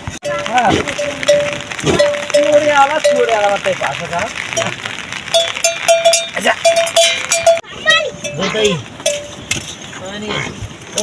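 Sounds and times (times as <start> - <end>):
animal neck bell clanking: 5.3 - 9.8.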